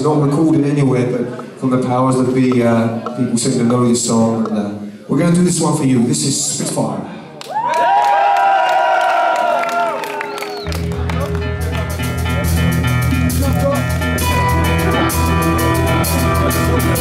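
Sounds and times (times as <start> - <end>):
live rock band playing: 10.6 - 17.0
bending pitched notes ringing: 10.7 - 17.0.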